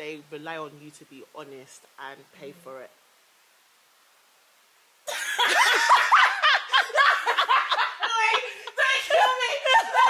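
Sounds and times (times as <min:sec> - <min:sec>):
women laughing and giggling: 0:05.1 - 0:10.0.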